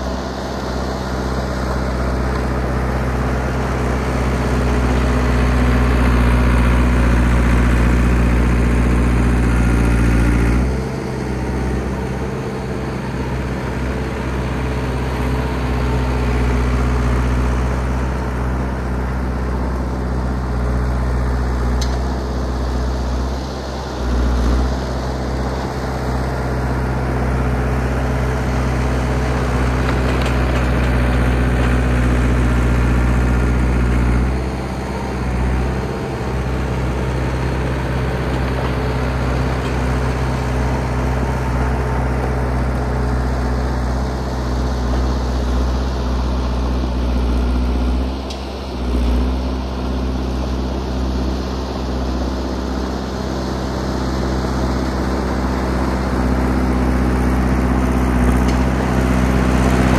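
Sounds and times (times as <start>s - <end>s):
bulldozer engine running: 0.0s - 59.9s.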